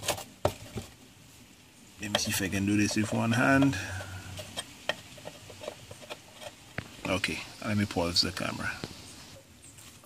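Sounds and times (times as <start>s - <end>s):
handling rustle: 2.0s - 7.3s.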